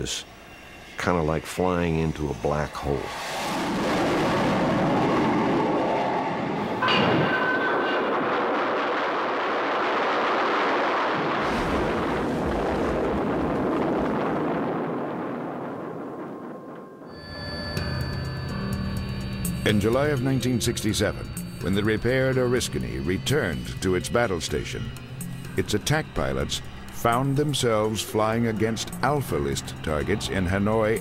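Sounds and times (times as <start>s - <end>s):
loud rushing noise: 2.8s - 16.7s
music with held tones: 17.1s - 31.0s.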